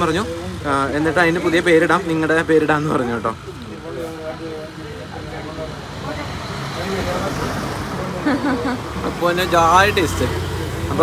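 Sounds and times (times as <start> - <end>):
faint voices: 0.0 - 11.0
motor vehicle passing: 3.8 - 11.0.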